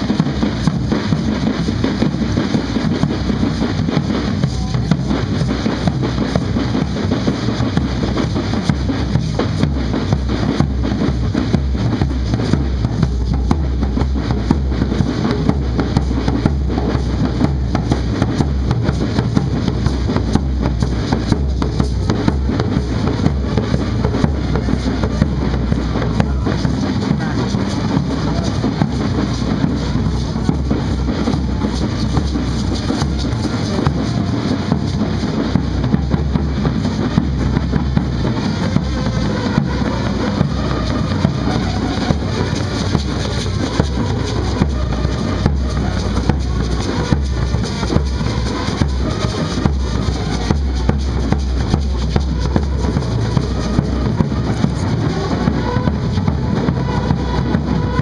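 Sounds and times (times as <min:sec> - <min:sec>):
bass drum beaten: 0:00.0 - 0:58.0.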